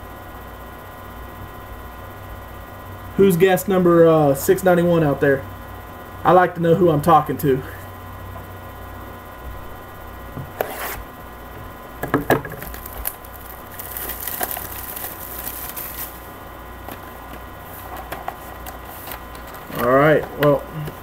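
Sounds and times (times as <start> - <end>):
steady electrical hum: 0.0 - 21.0
plastic wrap crinkling: 12.4 - 16.4.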